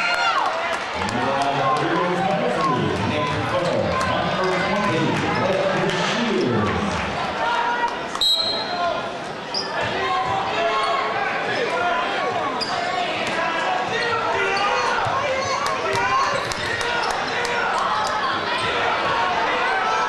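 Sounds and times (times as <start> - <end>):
crowd chatter echoing: 0.0 - 20.0.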